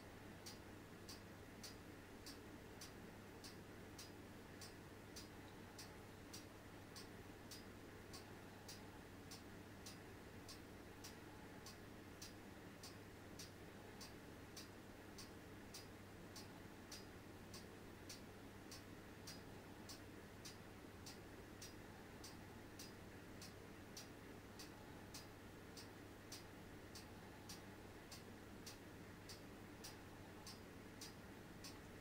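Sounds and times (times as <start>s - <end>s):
low steady hum: 0.0s - 32.0s
faint even ticking: 0.4s - 32.0s.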